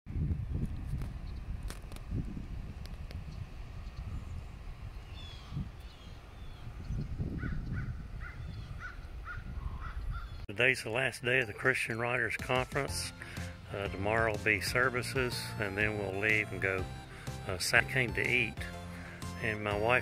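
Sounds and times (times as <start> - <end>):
gusty wind rumble on microphone: 0.1 - 10.4
higher bird chirps: 3.8 - 10.5
crow cawing: 7.4 - 10.4.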